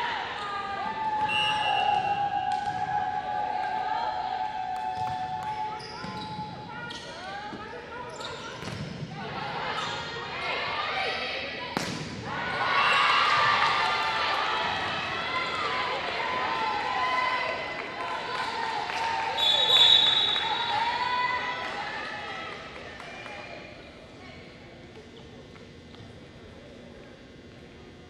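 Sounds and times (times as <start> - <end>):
players shouting and cheering: 0.0 - 6.9, 12.2 - 23.6.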